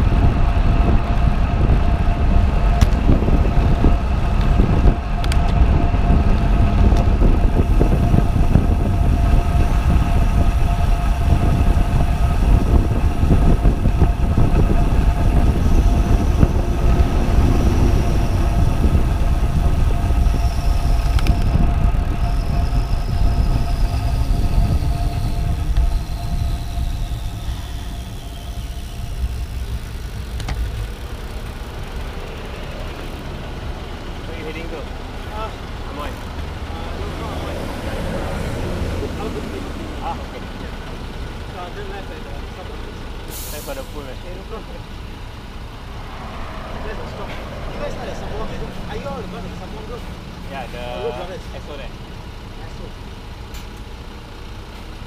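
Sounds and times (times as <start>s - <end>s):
wind buffeting microphone: 0.0s - 34.2s, 44.8s - 50.9s
bicycle road rumble: 0.0s - 55.0s.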